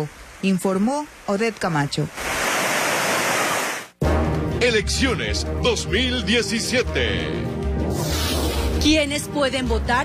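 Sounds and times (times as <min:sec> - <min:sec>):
floodwater rushing: 0:00.0 - 0:03.9.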